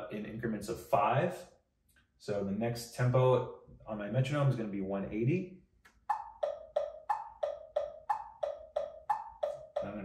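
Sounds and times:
metronome clicking: 0:05.9 - 0:10.0.

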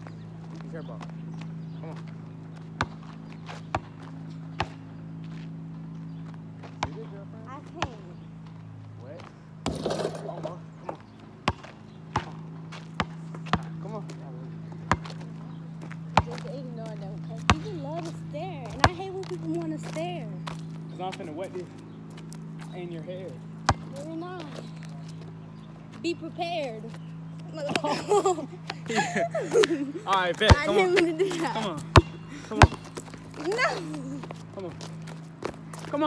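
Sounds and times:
steady low hum: 0:00.0 - 0:36.0
basketball bouncing: 0:02.6 - 0:04.9, 0:06.6 - 0:08.2, 0:09.6 - 0:13.9, 0:14.7 - 0:20.6, 0:23.6 - 0:24.7, 0:30.3 - 0:31.1, 0:31.7 - 0:33.6
voices: 0:06.8 - 0:09.4, 0:16.0 - 0:21.8, 0:22.4 - 0:35.0.

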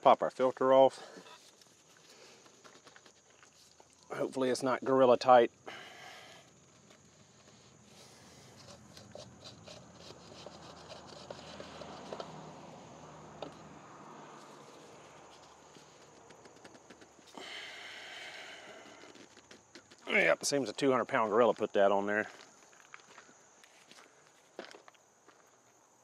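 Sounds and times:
rustle: 0:00.1 - 0:26.0
hands handling oil filter: 0:01.0 - 0:05.4, 0:06.4 - 0:12.4
plastic funnel rubbing and clicking: 0:01.3 - 0:03.9, 0:06.7 - 0:12.4, 0:14.4 - 0:17.4, 0:18.7 - 0:20.2.

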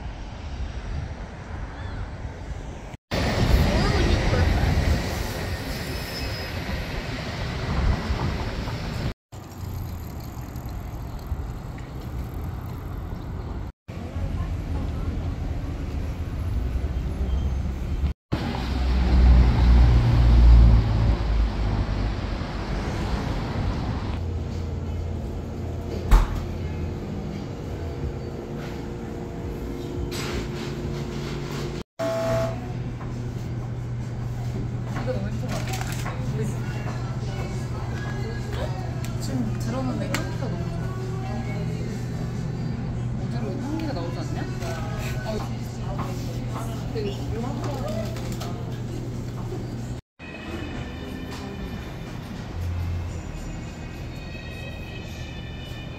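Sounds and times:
street traffic: 0:00.0 - 0:55.9.

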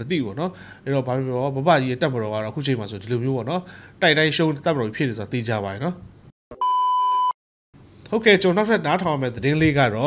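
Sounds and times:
electronic bleep tone: 0:06.5 - 0:07.4.

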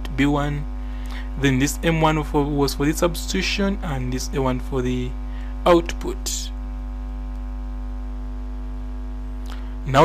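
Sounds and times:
man speaking: 0:00.0 - 0:06.6
electrical mains hum: 0:00.0 - 0:10.0.

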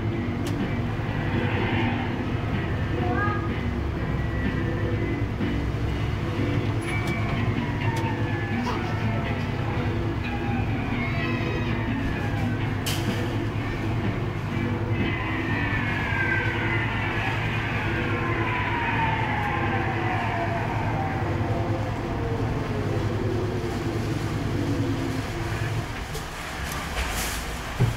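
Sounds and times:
kiddie ride mechanical rumble: 0:00.0 - 0:27.9.

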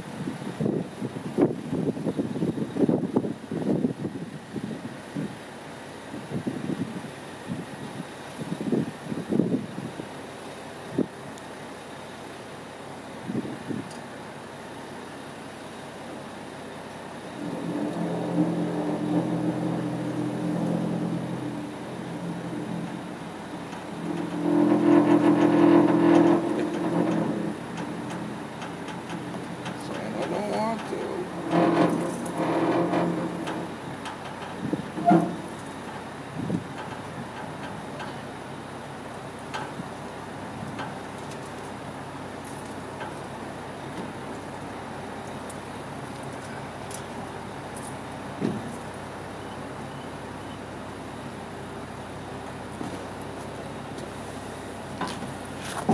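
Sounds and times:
hydraulic pump motor humming: 0:17.2 - 0:38.9.

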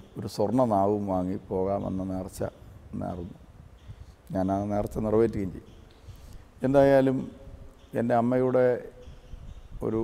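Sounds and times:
man speaking: 0:00.0 - 0:03.4, 0:04.3 - 0:05.8, 0:06.6 - 0:09.0, 0:09.8 - 0:10.0.

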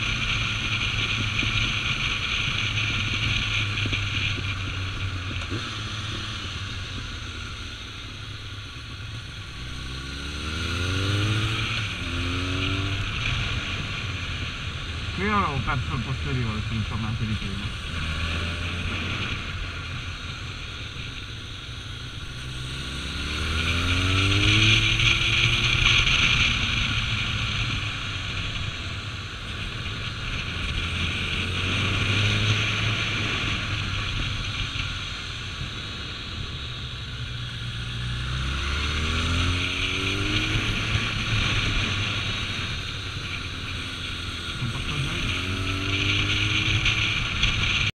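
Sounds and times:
motorcycle engine accelerating: 0:00.0 - 0:47.9.

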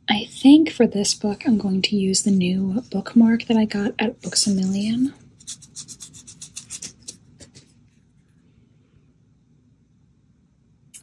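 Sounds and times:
bookmark rubbing on book: 0:03.5 - 0:07.7.

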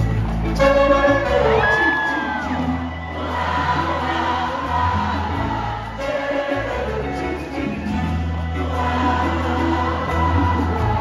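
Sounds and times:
live band with trombones: 0:00.0 - 0:11.0
audience cheering: 0:00.6 - 0:05.2.

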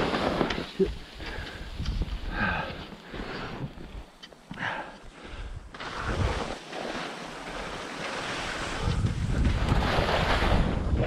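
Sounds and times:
skis scraping over snow: 0:00.0 - 0:04.2, 0:05.7 - 0:11.0
wind buffeting microphone: 0:08.7 - 0:11.0.

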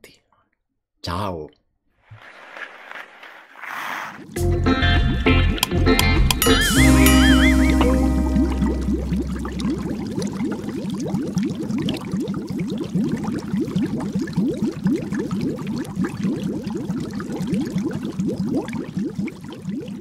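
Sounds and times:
water bubbling: 0:06.5 - 0:20.0.

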